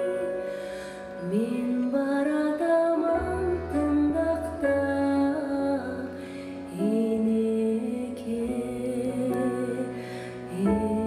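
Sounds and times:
grand piano: 0.0 - 11.0
woman singing slow melody: 0.0 - 11.0.

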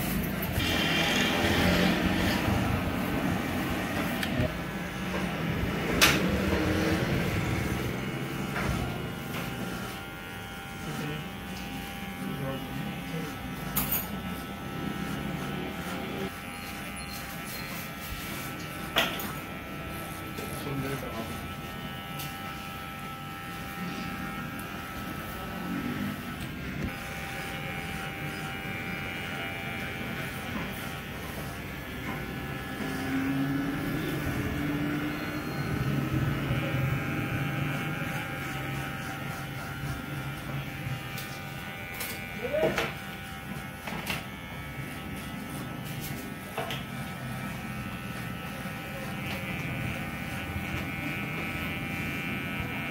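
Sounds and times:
electric hair clipper buzzing: 0.0 - 52.9.

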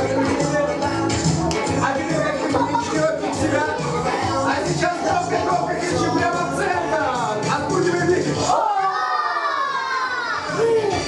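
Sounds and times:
dance music bass: 0.0 - 8.5.

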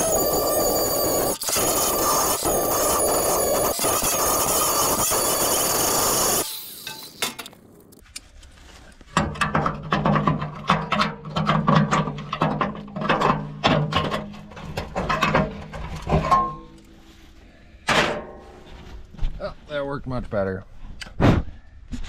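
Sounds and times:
angle grinder cutting metal: 0.0 - 7.6
metal clanks and scrapes: 6.4 - 17.2, 17.8 - 19.0.

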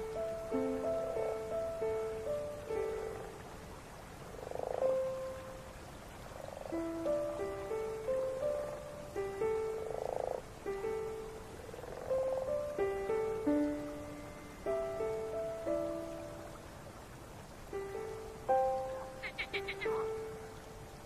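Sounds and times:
slow soft instrumental music: 0.0 - 3.6, 4.5 - 5.8, 6.4 - 21.0
frog croaking: 2.8 - 3.5, 4.2 - 13.2, 18.5 - 20.6.

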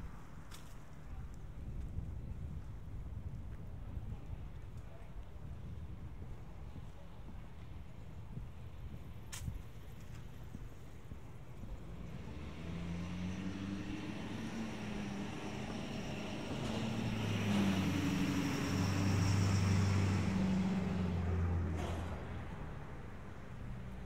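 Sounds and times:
truck engine passing: 11.8 - 24.0.

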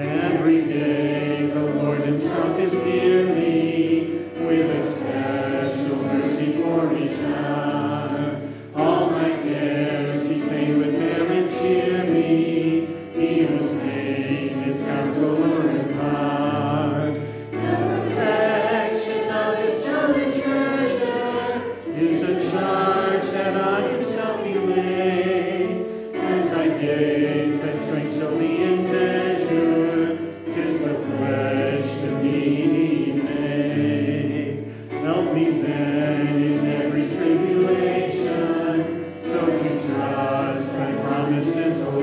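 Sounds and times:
group singing a hymn: 0.0 - 42.0.

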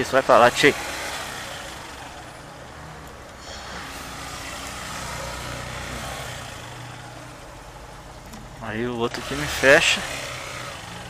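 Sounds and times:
other vehicles' engines: 0.0 - 11.0
small motorcycle engine: 0.0 - 11.0
wind and road noise: 0.0 - 11.0.

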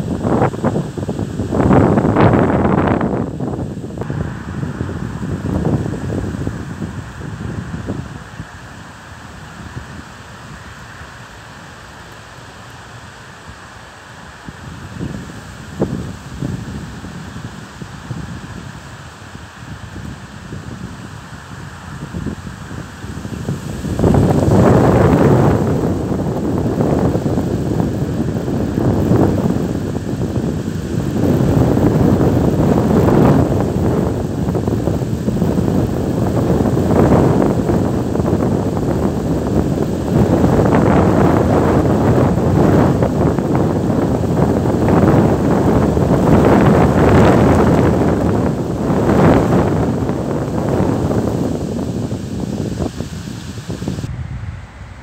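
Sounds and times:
gusty wind buffeting microphone: 0.0 - 12.0, 14.3 - 55.0.

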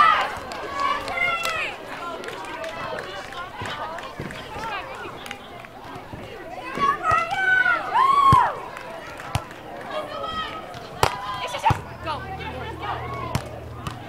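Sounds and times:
faint chatter: 0.0 - 14.0
girls calling out: 6.6 - 8.6.

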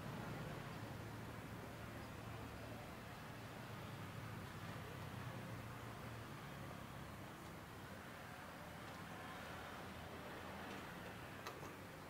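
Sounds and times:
distant traffic hum: 0.0 - 12.0.

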